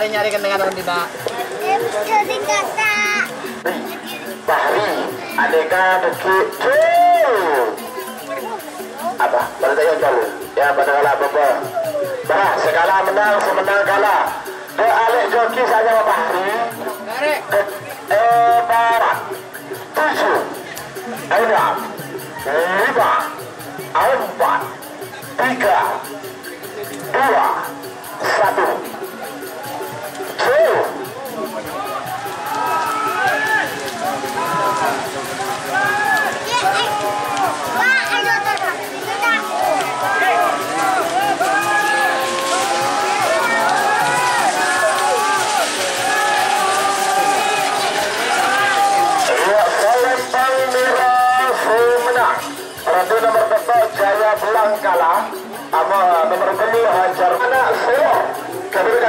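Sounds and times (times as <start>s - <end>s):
crowd shouting and cheering: 0.0s - 19.4s, 26.9s - 59.0s
music playing: 0.0s - 59.0s.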